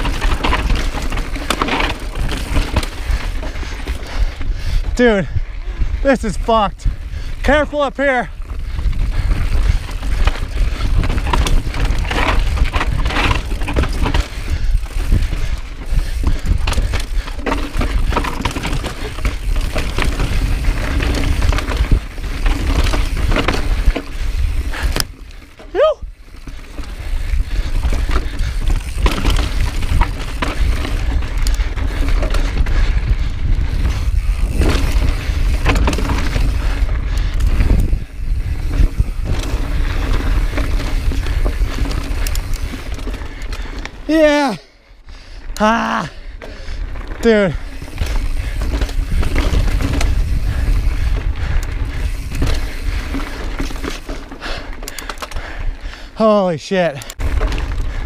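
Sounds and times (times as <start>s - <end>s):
bike rattling and knocking over rock: 0.0s - 4.0s, 8.4s - 44.4s, 46.4s - 55.4s, 57.2s - 58.0s
wind rumble on microphone: 0.0s - 44.1s, 46.8s - 54.2s.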